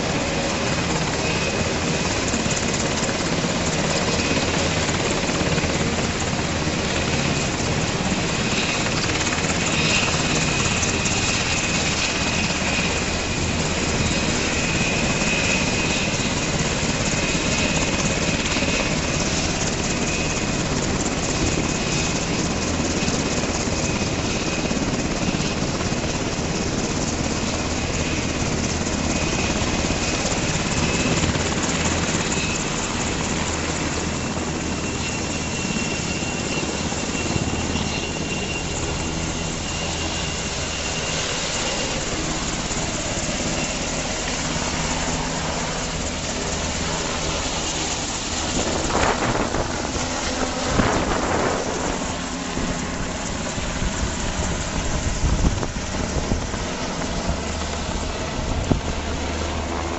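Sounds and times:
helicopter rotor chop: 0.0s - 59.9s
high turbine whine: 0.0s - 59.9s.

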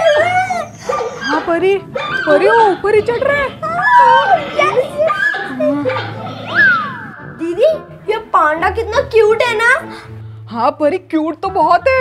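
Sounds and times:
girls squealing excitedly: 6.4s - 7.2s.

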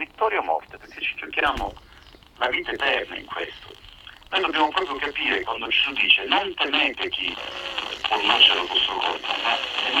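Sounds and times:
radio speech through small speaker: 0.0s - 10.0s.

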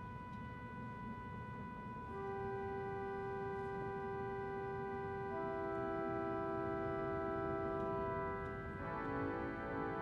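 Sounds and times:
pipe organ playing softly: 0.0s - 10.0s.

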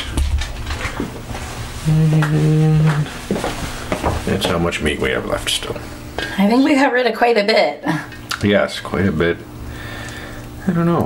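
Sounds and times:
person speaking: 1.8s - 3.2s.

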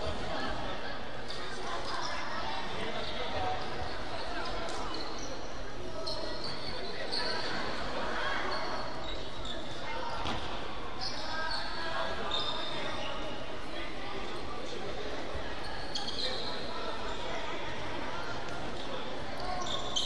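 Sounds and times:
voices echoing in hall: 0.0s - 20.0s.

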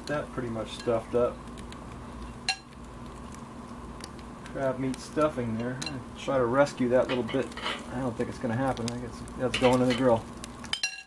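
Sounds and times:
low steady hum: 0.0s - 11.0s
metallic utensil clink: 9.5s - 11.0s.

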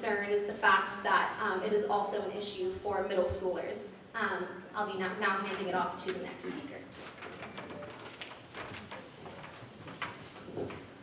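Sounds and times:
faint clicks and knocks: 5.4s - 11.0s.

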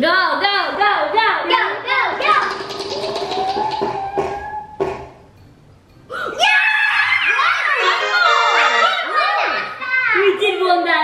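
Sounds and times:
sharp knocks: 2.3s - 5.2s
loud excited voices: 6.3s - 11.0s
child shouting: 6.4s - 10.4s.

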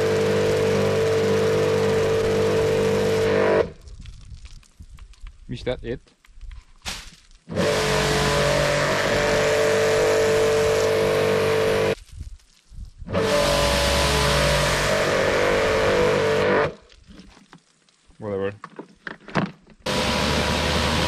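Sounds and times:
pressure washer motor hum: 0.0s - 3.7s, 7.5s - 12.0s, 13.2s - 16.8s, 19.9s - 21.0s.

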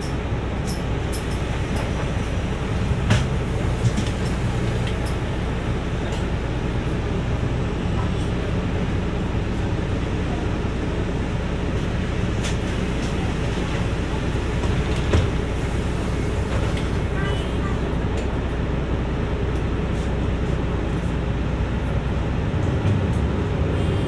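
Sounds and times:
bus engine rumbling: 0.0s - 24.0s.

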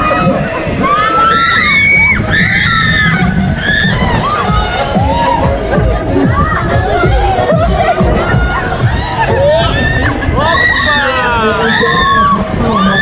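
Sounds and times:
steady low rumble: 0.0s - 12.8s
riders screaming and shouting: 0.0s - 13.0s.

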